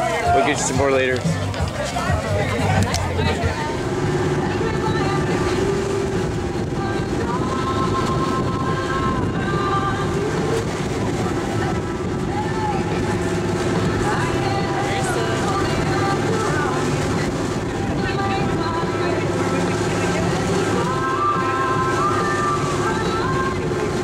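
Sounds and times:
boat engine droning: 0.0s - 24.0s.

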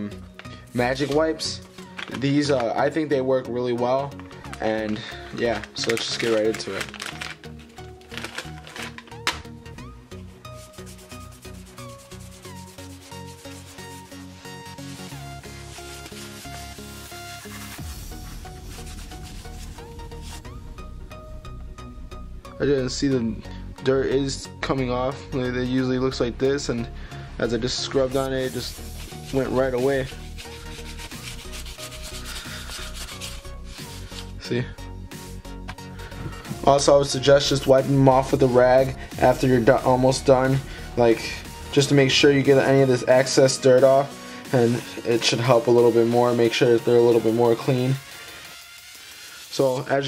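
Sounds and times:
background music with a beat: 0.0s - 23.6s, 26.8s - 50.0s
wipe scrubbing a shoe: 10.4s - 20.5s, 28.1s - 34.4s.

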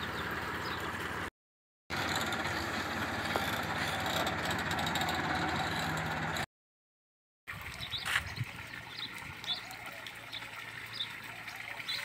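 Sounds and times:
water running from a hose: 7.5s - 12.0s.

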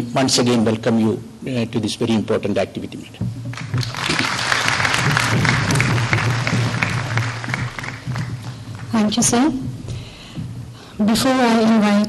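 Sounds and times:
steady low hum: 0.0s - 12.0s
audience clapping: 3.5s - 9.4s.

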